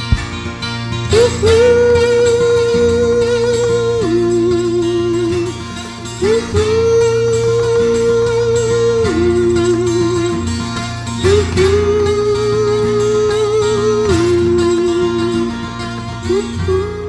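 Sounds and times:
twelve-string acoustic guitar: 0.0s - 17.0s.

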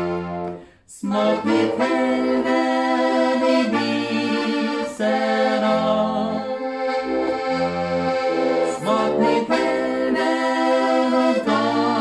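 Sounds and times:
button accordion playing folk tune: 0.0s - 12.0s
man and woman singing duet: 0.9s - 6.6s, 8.6s - 12.0s.

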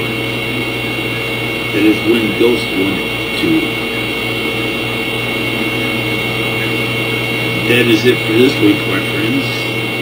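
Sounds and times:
steady background hum: 0.0s - 10.0s
man speaking: 1.8s - 3.8s, 7.6s - 9.7s.

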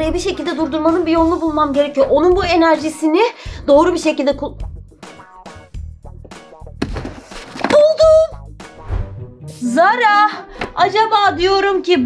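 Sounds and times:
upbeat music with bass beat: 4.5s - 7.4s.

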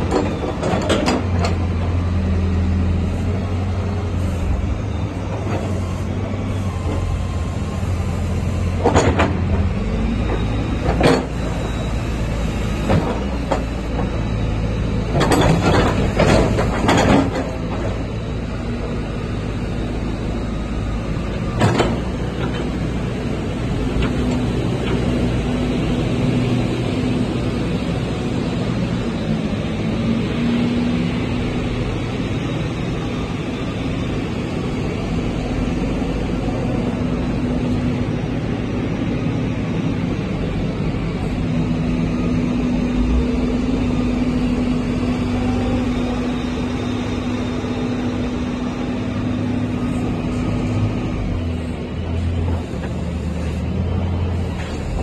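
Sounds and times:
excavator diesel engine running: 0.0s - 55.0s.

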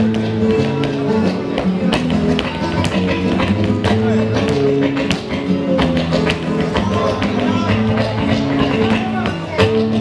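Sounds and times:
dancer's shoes tapping stage: 0.0s - 10.0s
flamenco guitar music: 0.0s - 10.0s.

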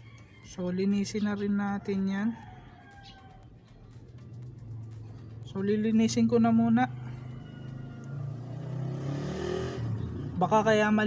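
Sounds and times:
scooter engine humming: 3.4s - 11.0s.

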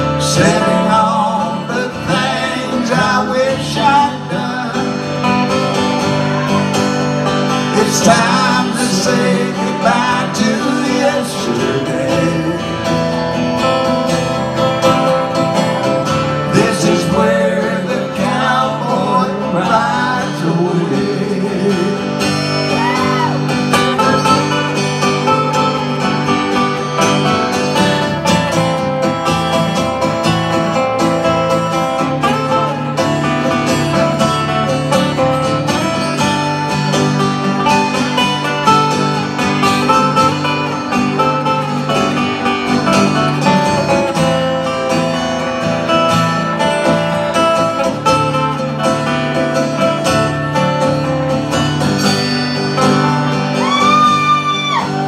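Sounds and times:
acoustic guitars strumming chords: 0.0s - 55.0s
guitar lead melody with bent notes: 0.0s - 55.0s.

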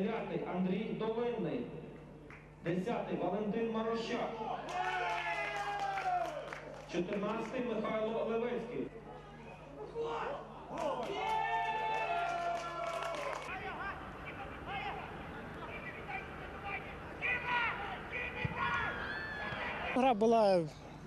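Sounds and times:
outdoor ambience: 8.9s - 21.0s
footballers shouting: 9.8s - 20.1s.

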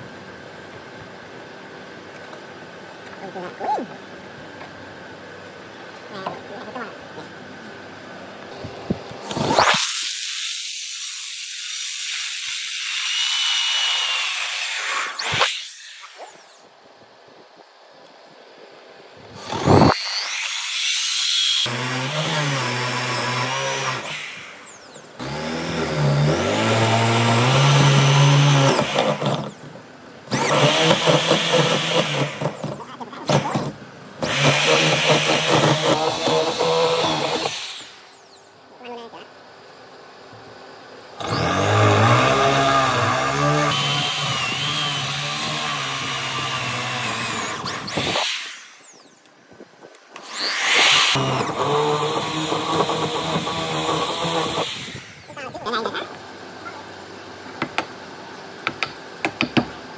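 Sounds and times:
electric drill boring into wood: 9.2s - 16.7s, 19.4s - 29.7s, 30.3s - 38.5s, 41.2s - 49.2s, 50.2s - 55.5s.

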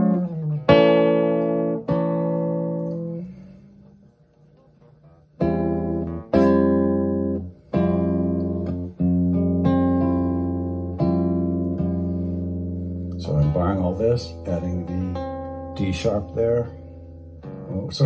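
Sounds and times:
classical guitar chords strummed: 0.0s - 18.0s.

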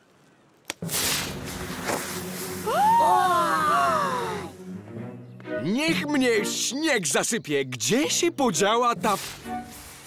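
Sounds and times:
background music: 0.9s - 10.0s.

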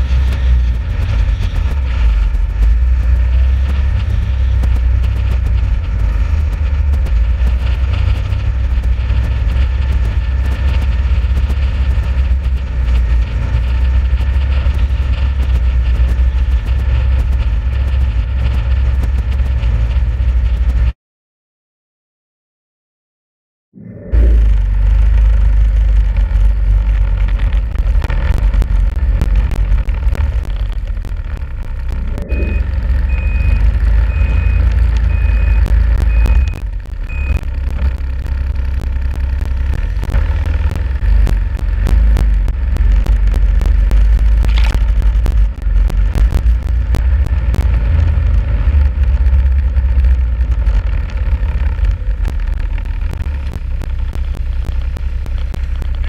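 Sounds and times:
snowmobile engine rumbling: 0.0s - 21.0s, 23.8s - 56.0s
short high beeps: 32.2s - 37.5s.

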